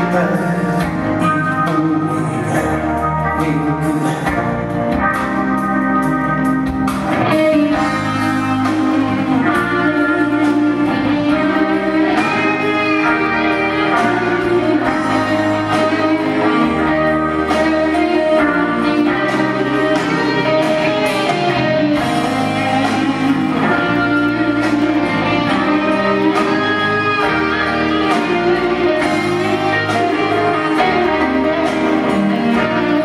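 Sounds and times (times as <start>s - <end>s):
bass line: 0.0s - 33.0s
electric guitar lead: 0.0s - 33.0s
live rock band: 0.0s - 33.0s.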